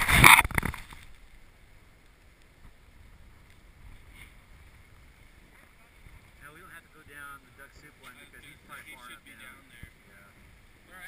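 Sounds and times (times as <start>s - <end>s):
wind buffeting microphone: 2.6s - 11.0s.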